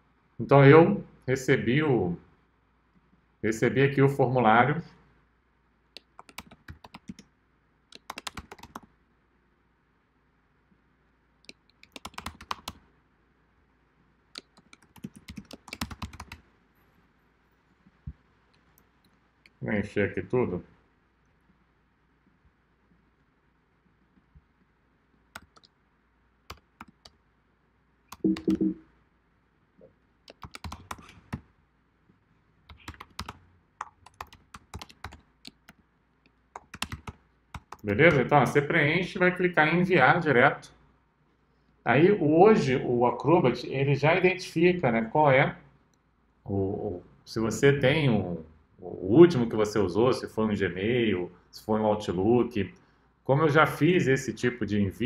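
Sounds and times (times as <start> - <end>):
typing on computer keyboard: 6.0 - 7.2, 7.9 - 8.9, 11.5 - 12.8, 14.4 - 16.4, 25.4 - 25.7, 26.5 - 27.2, 30.3 - 31.4, 32.7 - 35.8, 36.5 - 38.3.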